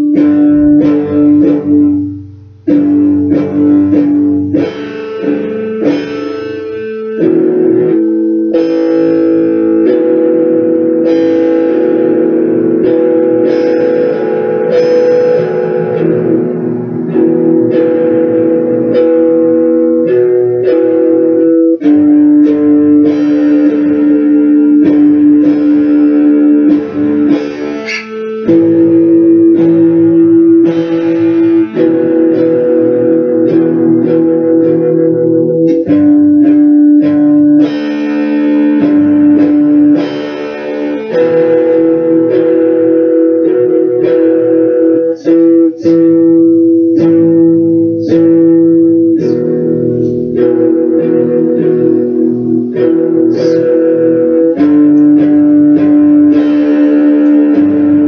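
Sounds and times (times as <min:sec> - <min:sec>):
guitar playing chords: 0:00.0 - 0:58.0.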